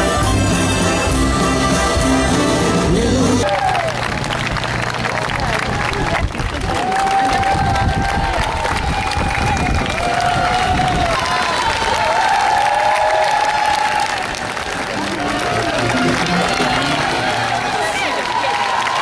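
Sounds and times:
crowd applauding and cheering: 0.0 - 19.0.

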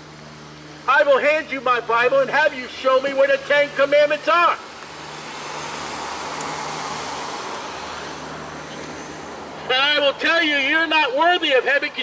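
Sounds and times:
car passing by: 4.4 - 9.8.

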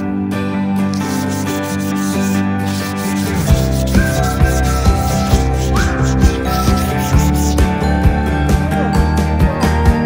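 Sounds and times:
music playing: 0.0 - 10.0
sandpaper rubbing on wood: 0.9 - 7.7.

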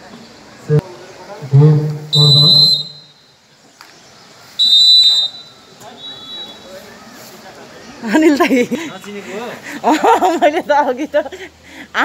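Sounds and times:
referee's whistle blasts: 2.0 - 3.3, 4.6 - 6.7.

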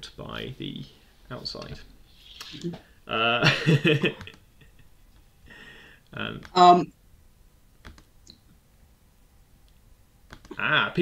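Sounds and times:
faint sharp clicks: 9.6 - 10.5.

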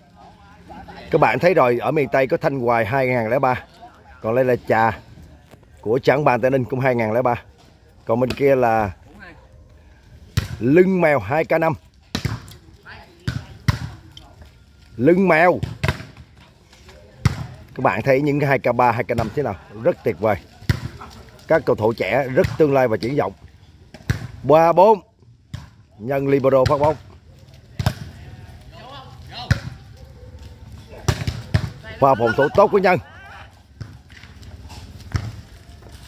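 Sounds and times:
volleyball being struck: 15.6 - 16.2, 23.9 - 24.4.

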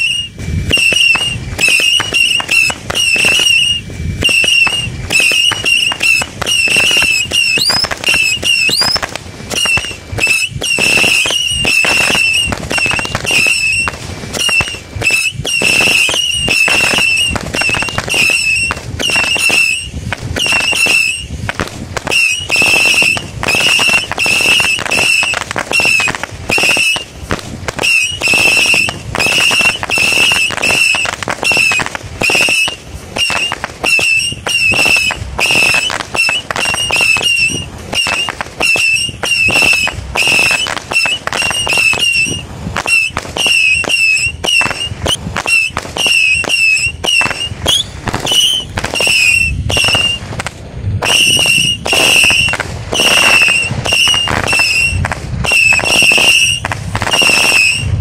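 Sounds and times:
firework crackling pops: 0.0 - 58.0
firework shots whistling: 0.0 - 58.0
rising firework whistles: 0.0 - 58.0.

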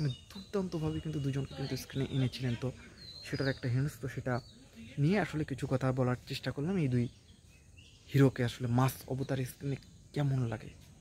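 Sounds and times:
man talking: 0.0 - 7.1, 8.1 - 10.9
faint outdoor background noise: 0.0 - 11.0.

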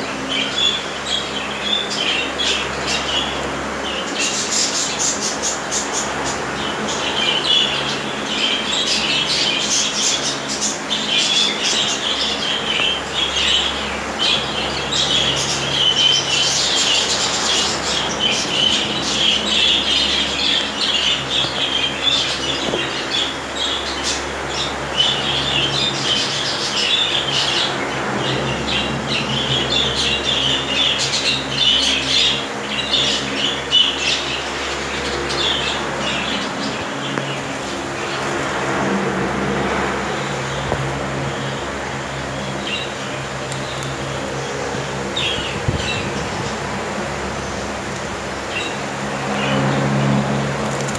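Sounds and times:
budgerigars chirping: 0.3 - 38.2.

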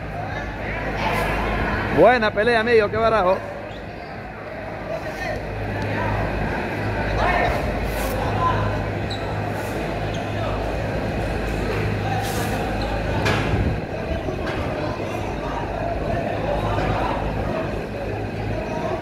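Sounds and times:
indistinct people talking: 0.0 - 19.0
steady low hum: 0.0 - 19.0.

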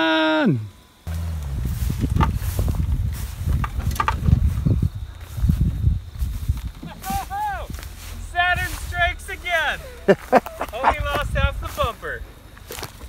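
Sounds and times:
low vehicle rumble: 1.1 - 13.0
vegetation crackling and snapping: 12.5 - 13.0.

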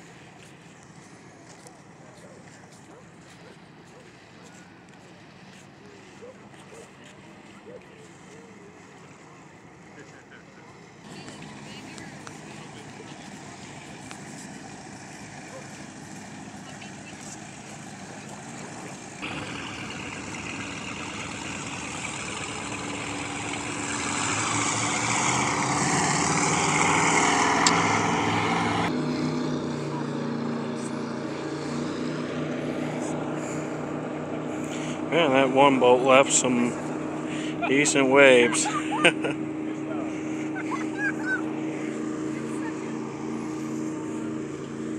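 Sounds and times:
motorboat engine passing: 0.0 - 44.9.

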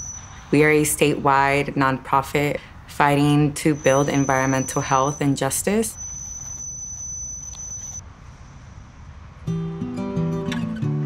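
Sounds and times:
high-pitched tone: 0.0 - 1.0, 3.6 - 8.0
distant traffic rumble: 0.0 - 10.4.

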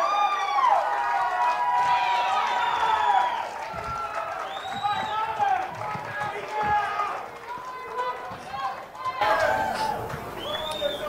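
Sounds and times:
crowd of people talking: 1.5 - 11.0.

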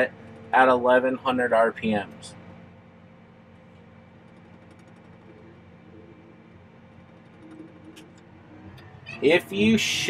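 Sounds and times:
faint tractor engine hum: 0.0 - 10.0.

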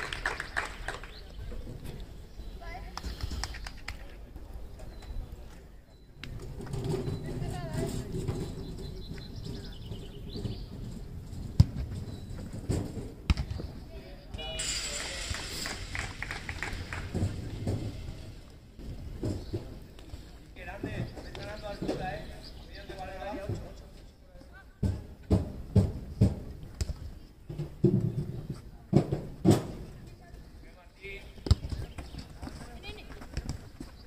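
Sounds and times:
football being kicked: 31.4 - 31.9.

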